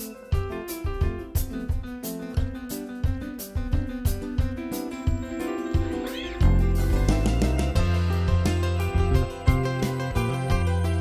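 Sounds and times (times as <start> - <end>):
keyboard and acoustic guitar: 0.0 - 11.0
high bending note: 5.3 - 11.0
deep bass: 6.4 - 11.0.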